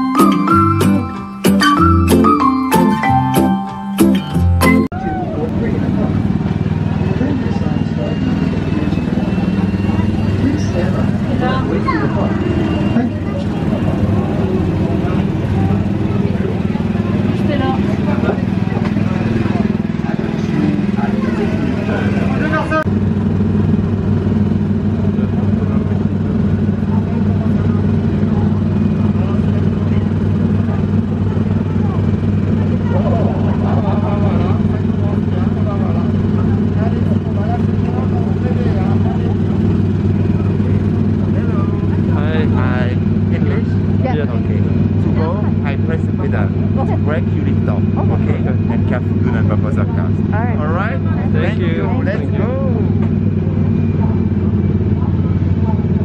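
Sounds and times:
people's voices: 0.0 - 56.0
small petrol engines idling: 0.0 - 56.0.

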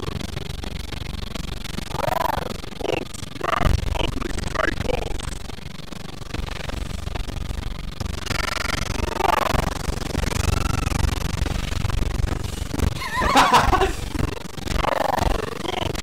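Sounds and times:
steady low rumble: 0.0 - 16.0.

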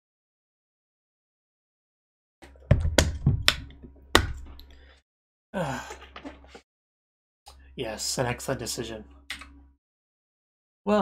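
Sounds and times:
objects knocking and clacking: 2.4 - 4.7
low electrical hum: 7.5 - 9.8.

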